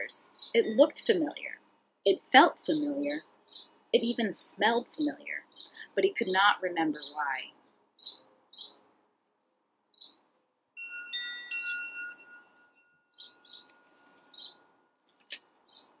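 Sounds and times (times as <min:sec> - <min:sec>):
high bird chirps: 0:00.0 - 0:01.6, 0:02.6 - 0:08.8, 0:09.9 - 0:10.2, 0:10.8 - 0:16.0
wind chimes ringing: 0:10.8 - 0:14.6.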